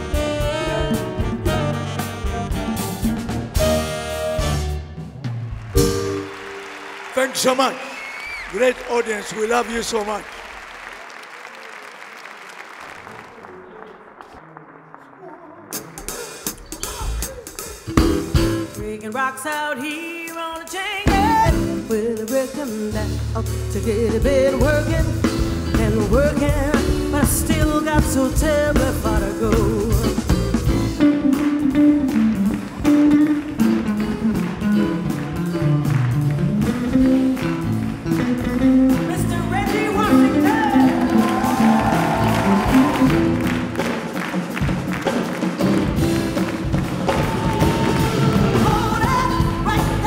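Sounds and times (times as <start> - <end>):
band music: 0.0 - 11.1, 12.6 - 50.0
guitar and plucked strings: 30.3 - 41.2.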